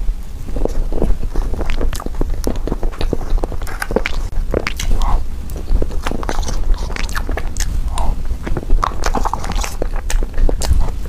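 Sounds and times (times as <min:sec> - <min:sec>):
steady low hum: 0:00.0 - 0:11.0
wet chewing: 0:00.5 - 0:11.0
lip smacks and mouth clicks: 0:01.5 - 0:11.0.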